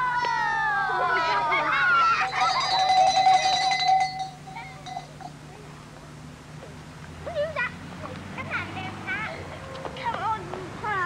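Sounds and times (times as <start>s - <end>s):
child's long high call: 0.0s - 2.9s.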